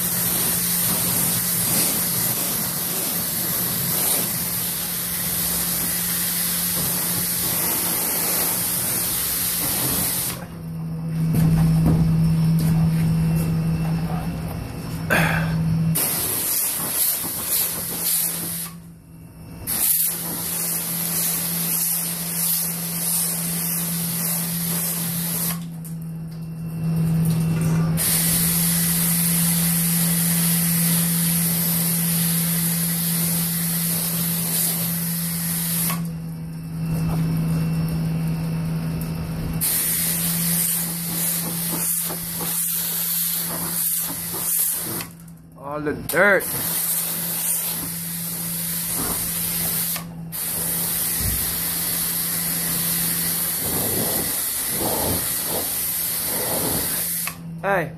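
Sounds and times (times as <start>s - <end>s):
water jet spraying hard: 0.0s - 10.4s, 16.0s - 18.8s, 19.7s - 25.7s, 28.0s - 36.1s, 39.6s - 45.2s, 46.1s - 57.4s
low hum: 10.4s - 16.0s.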